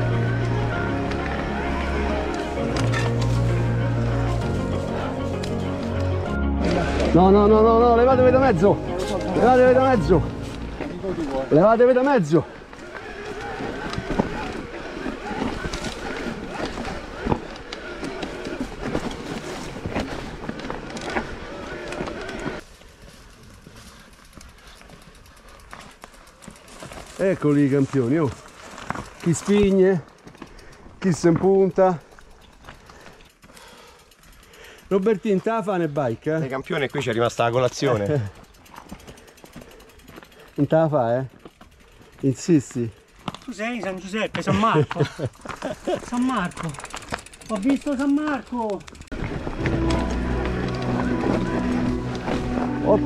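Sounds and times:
bike rattling: 0:00.0 - 0:53.0
man's voice: 0:06.4 - 0:10.3
bike tyres clattering on stones: 0:09.0 - 0:53.0
freewheel hub ticking: 0:45.4 - 0:49.2.

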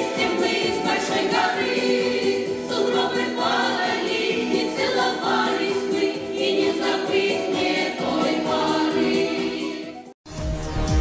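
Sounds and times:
choir singing folk song: 0:00.0 - 0:10.2.

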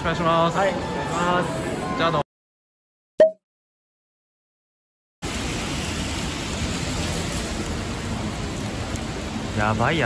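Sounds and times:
steady outdoor hiss: 0:05.2 - 0:10.0.

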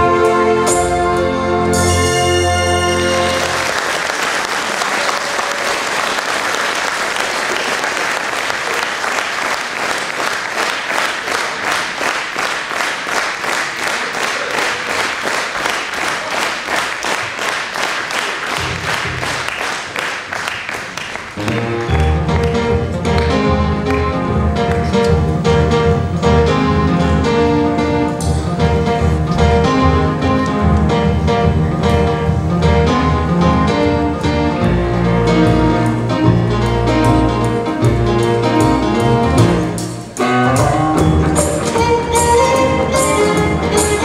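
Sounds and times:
trumpet-led band: 0:00.0 - 0:04.0
audience applause: 0:03.1 - 0:24.1
rhythmic clapping in unison: 0:03.1 - 0:25.2
plucked strings: 0:21.4 - 0:44.0.

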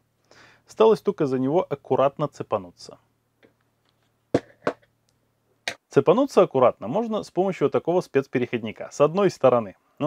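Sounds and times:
metal parts knocking on workbench: 0:04.4 - 0:04.9.

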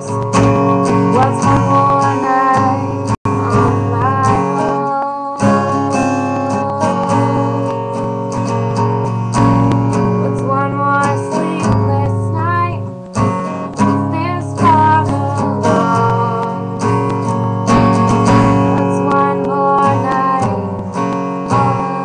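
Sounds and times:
woman singing: 0:00.0 - 0:08.2, 0:10.0 - 0:22.0
acoustic guitar strumming: 0:00.0 - 0:22.0.

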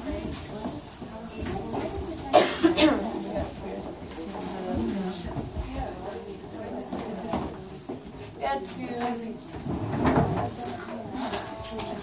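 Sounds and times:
low chatter: 0:00.0 - 0:12.0
person coughing: 0:02.3 - 0:03.0.

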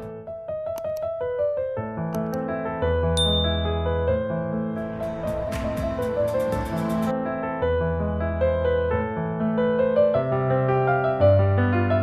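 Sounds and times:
soft piano music: 0:00.0 - 0:12.0
notification ding: 0:03.2 - 0:04.0.

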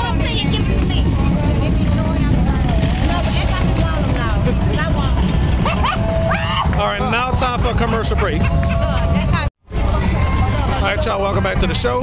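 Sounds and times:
bus engine rumbling: 0:00.0 - 0:12.0
crowd voices: 0:00.0 - 0:12.0.

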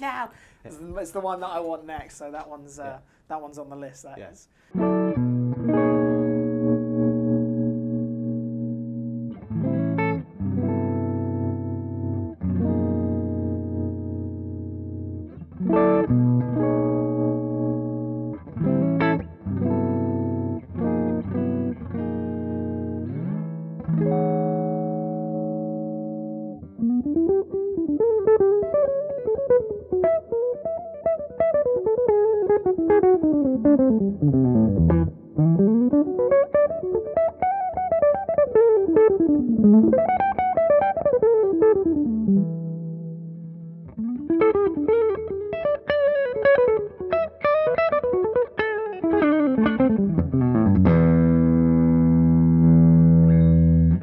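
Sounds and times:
electric guitar strummed chords: 0:04.8 - 0:54.0.

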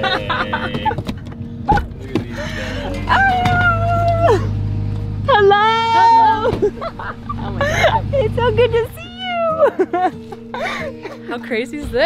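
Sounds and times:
low steady hum: 0:00.0 - 0:11.2
women calling out in greeting: 0:08.2 - 0:09.7.

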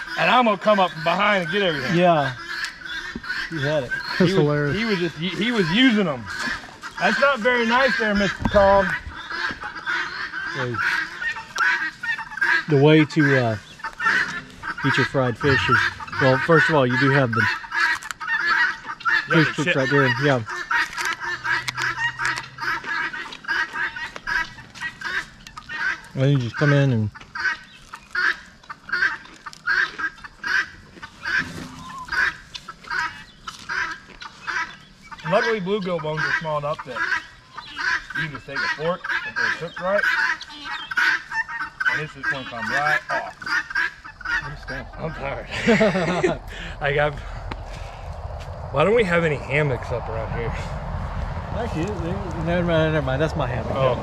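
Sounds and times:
guinea fowl and chickens squawking: 0:00.0 - 0:48.9.

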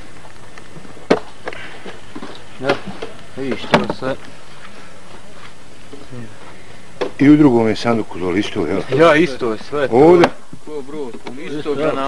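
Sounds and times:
men's voices: 0:05.9 - 0:12.0.

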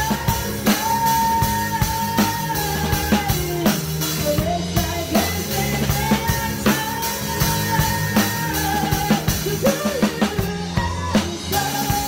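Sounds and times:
drum kit: 0:00.0 - 0:12.0
live band playing pop ballad: 0:00.0 - 0:12.0.

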